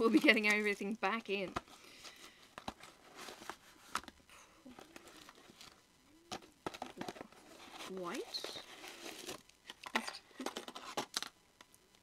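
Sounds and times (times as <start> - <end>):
packaging crinkling: 1.8 - 11.7.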